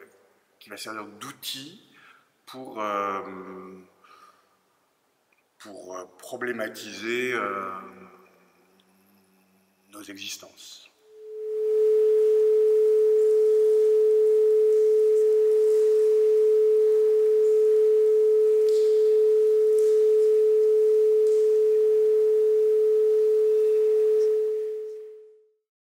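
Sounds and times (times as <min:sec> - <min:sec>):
steady pure tone: 0:11.0 - 0:25.5.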